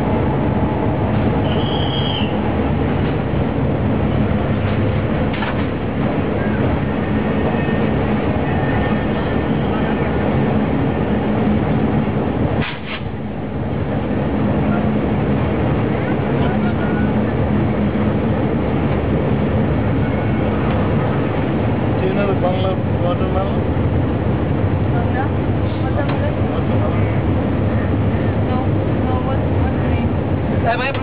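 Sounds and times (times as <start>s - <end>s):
diesel locomotive engine running: 0.0s - 31.0s.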